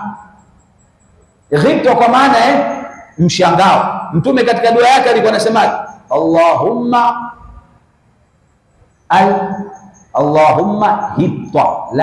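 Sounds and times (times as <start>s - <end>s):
man preaching: 1.5s - 7.4s, 9.1s - 12.0s.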